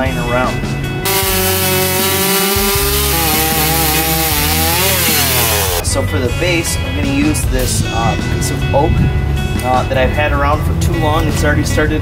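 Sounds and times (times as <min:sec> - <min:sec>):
chainsaw cutting through log: 0:01.0 - 0:05.8.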